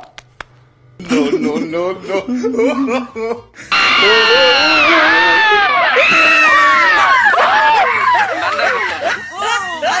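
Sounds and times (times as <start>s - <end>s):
voices yelling together: 3.7s - 9.2s.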